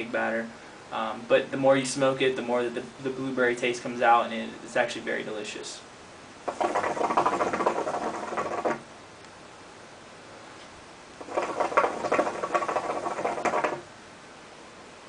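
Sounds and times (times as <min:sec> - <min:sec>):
water gurgling in hookah: 0:06.4 - 0:08.9, 0:11.2 - 0:13.9.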